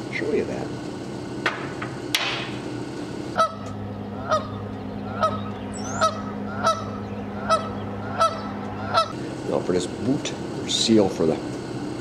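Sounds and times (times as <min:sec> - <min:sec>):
steady low hum: 0:00.0 - 0:12.0
metal part knocking on steel workbench: 0:01.4 - 0:02.5.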